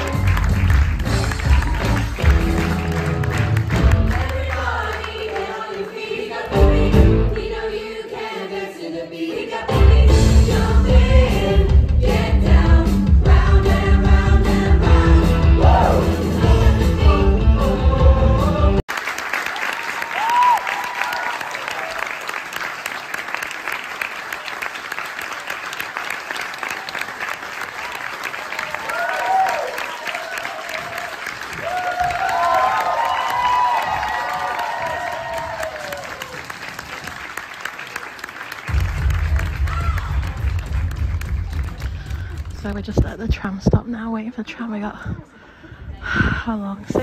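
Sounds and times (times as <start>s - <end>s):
audience cheering and whooping: 0.0s - 3.6s, 19.5s - 22.5s, 26.6s - 38.4s, 39.2s - 40.8s
audience applauding: 0.0s - 6.1s, 18.9s - 42.8s.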